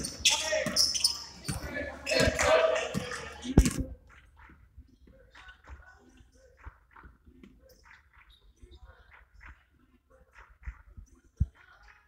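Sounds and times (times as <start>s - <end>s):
sneakers squeaking on hardwood: 0.0s - 3.9s.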